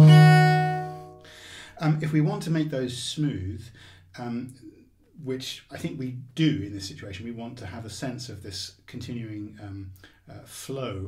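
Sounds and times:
bowed low string note: 0.0s - 1.2s.

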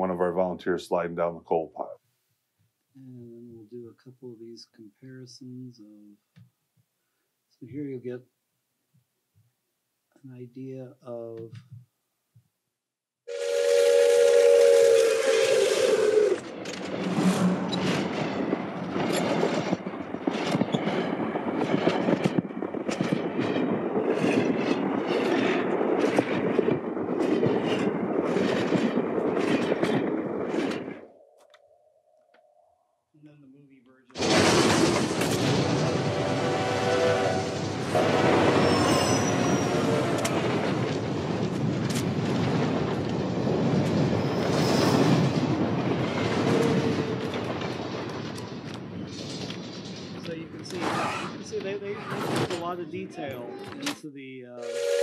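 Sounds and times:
steam locomotive whistle: 13.3s - 16.5s, 35.9s - 40.4s, 54.6s - 55.0s
passing train with rail clatter: 13.3s - 31.1s, 34.2s - 50.8s.

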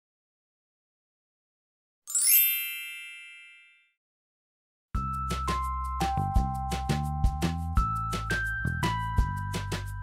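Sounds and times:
high tinkling chime notes: 2.1s - 3.8s
bright ringing tones: 2.1s - 3.9s.

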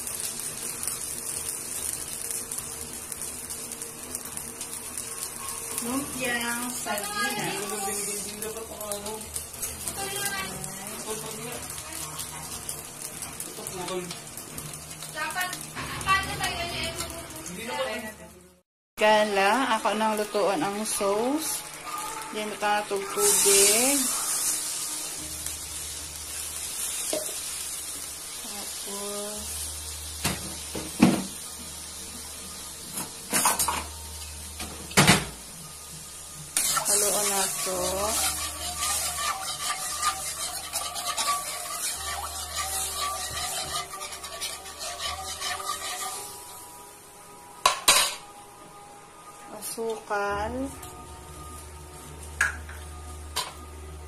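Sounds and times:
sauce bubbling and sizzling: 0.0s - 54.0s
spatula scraping wok: 21.7s - 28.0s, 36.1s - 46.8s.

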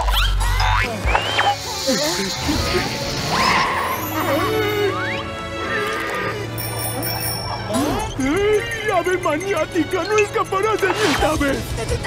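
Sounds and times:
cartoon music: 0.0s - 12.0s
high bell-like ringing: 6.5s - 10.9s.

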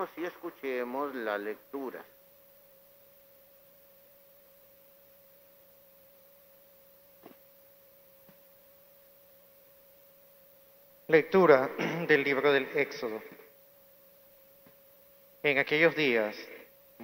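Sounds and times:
faint steady tone: 0.0s - 17.0s.

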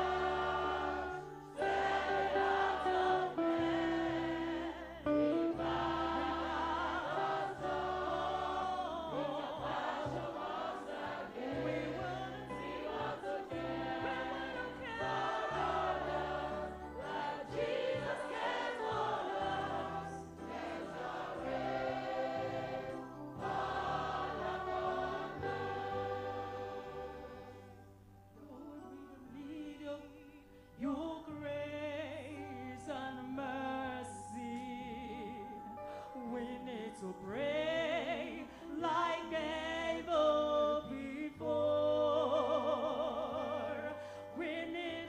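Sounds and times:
choir singing gospel: 0.0s - 45.0s.

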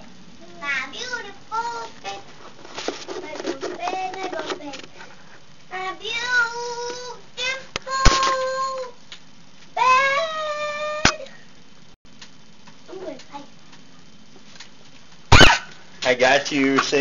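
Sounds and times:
girl singing: 0.4s - 2.3s, 3.2s - 4.8s, 5.7s - 9.0s, 9.8s - 11.2s.

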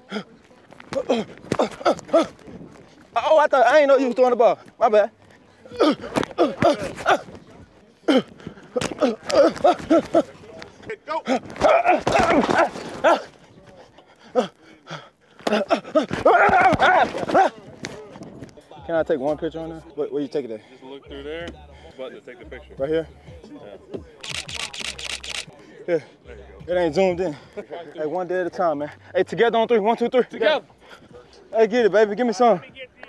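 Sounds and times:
man shouting and grunting: 11.1s - 13.3s, 15.5s - 17.5s
camera shutter burst: 24.2s - 25.5s.

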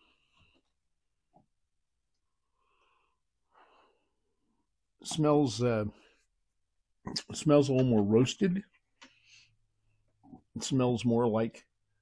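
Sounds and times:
faint breathing: 2.3s - 4.7s, 9.0s - 10.0s.

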